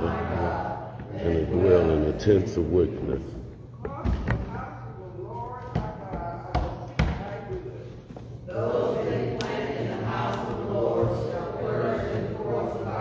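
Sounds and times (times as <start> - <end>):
voices speaking in a church: 0.0 - 13.0.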